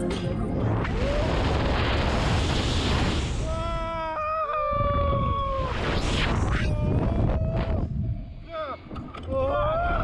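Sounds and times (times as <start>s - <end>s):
wind rumble on microphone: 4.7s - 10.0s.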